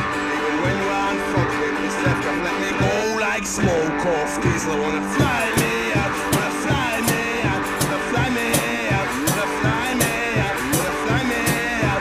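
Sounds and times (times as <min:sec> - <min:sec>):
rock drum beat: 0:00.0 - 0:12.0.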